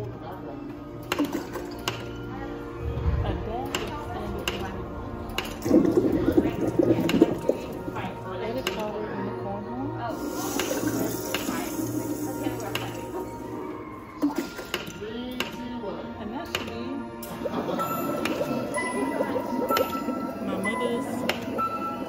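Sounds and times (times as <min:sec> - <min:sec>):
music playing: 0:00.0 - 0:22.0.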